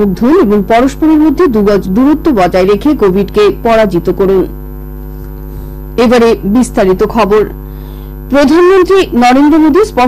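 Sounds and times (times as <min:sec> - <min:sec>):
newsreader speaking: 0:00.0 - 0:04.5, 0:06.0 - 0:07.5, 0:08.3 - 0:10.0
electrical mains hum: 0:00.0 - 0:10.0.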